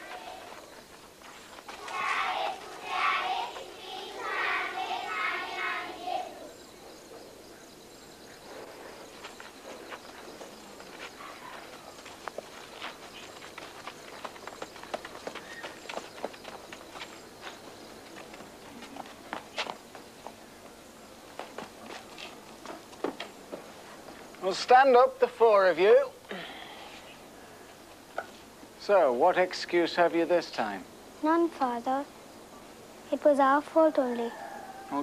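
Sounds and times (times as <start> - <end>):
footsteps on dirt path: 0.0 - 5.8, 8.6 - 24.5.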